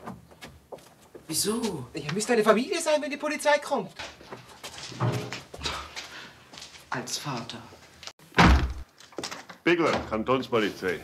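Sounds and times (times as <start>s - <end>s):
feet shuffling: 3.9s - 8.1s.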